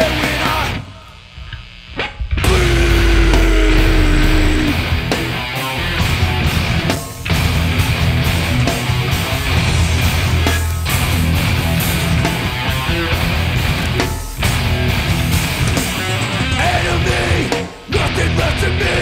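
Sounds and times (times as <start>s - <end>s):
heavy metal band playing loud: 0.0s - 0.8s, 2.3s - 19.0s
held guitar note: 2.4s - 5.2s.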